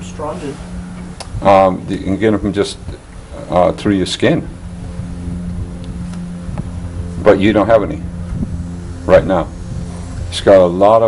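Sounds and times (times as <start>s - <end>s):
faint low rumble: 0.0s - 11.0s
steady low hum: 0.0s - 11.0s.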